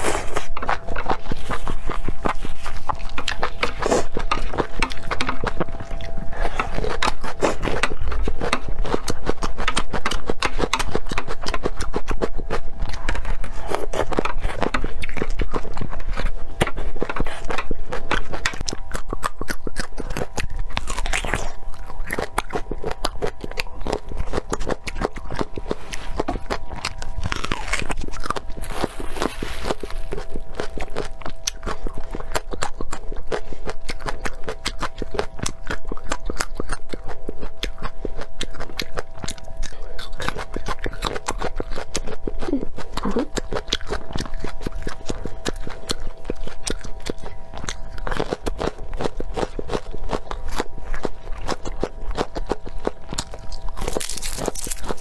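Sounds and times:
crunching raw vegetables: 0.0 - 55.0.

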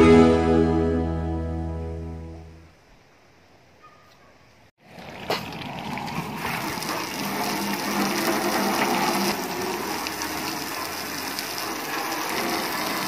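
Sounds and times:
hose water spraying on car: 5.1 - 13.0.

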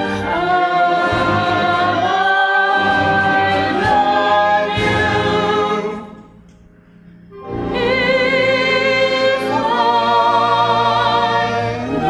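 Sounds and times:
voices singing in harmony: 0.0 - 6.4, 7.4 - 12.0
symphony orchestra: 0.0 - 12.0.

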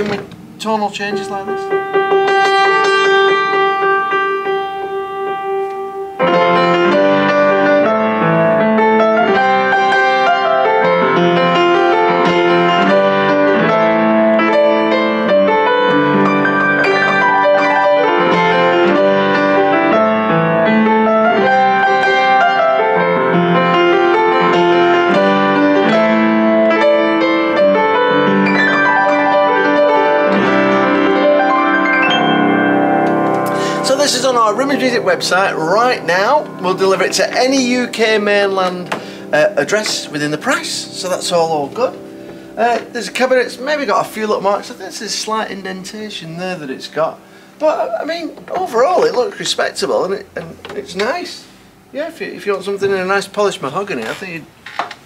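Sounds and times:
piano chords and melody: 0.0 - 54.4.

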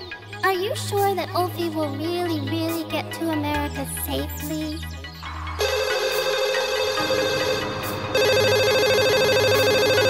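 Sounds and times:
electronic ringtone warble: 5.6 - 10.0.

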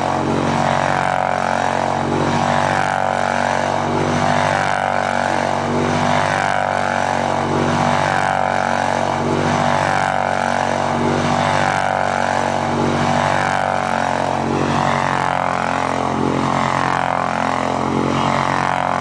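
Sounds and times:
quad bike engine running: 0.0 - 19.0.

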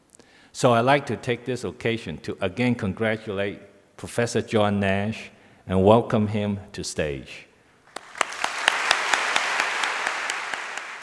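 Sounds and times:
audience applauding: 7.9 - 11.0.

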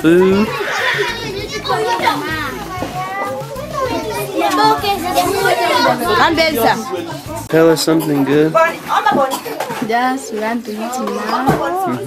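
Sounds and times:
children talking and calling out: 0.0 - 12.0.

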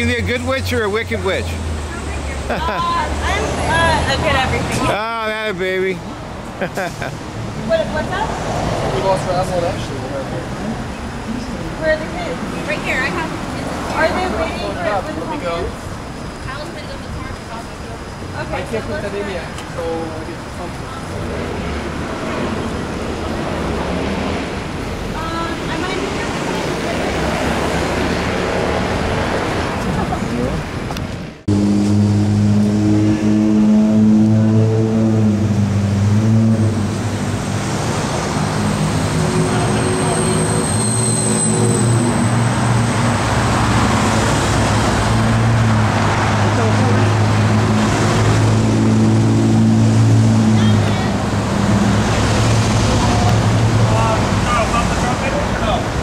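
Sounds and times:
street traffic: 0.0 - 56.0.

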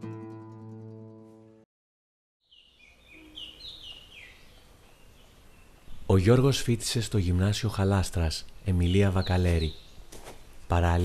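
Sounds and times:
birds chirping: 2.4 - 11.0
faint outdoor background noise: 2.5 - 11.0.

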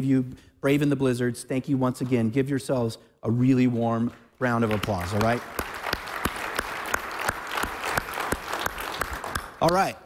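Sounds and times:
man clapping close to microphone: 4.1 - 10.0
audience applause: 4.6 - 9.8.

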